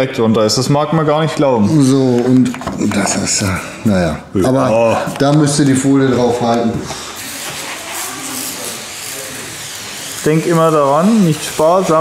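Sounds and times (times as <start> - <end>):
cloth scrubbing painted metal: 6.2 - 12.0.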